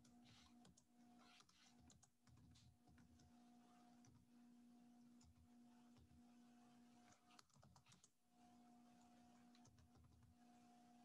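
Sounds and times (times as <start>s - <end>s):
computer keyboard typing: 0.0s - 3.3s, 7.0s - 8.2s, 9.0s - 10.3s.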